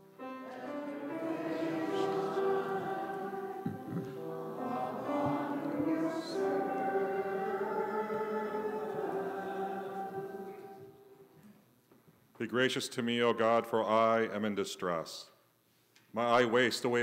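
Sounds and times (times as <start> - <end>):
church choir singing held notes: 0.0 - 11.3.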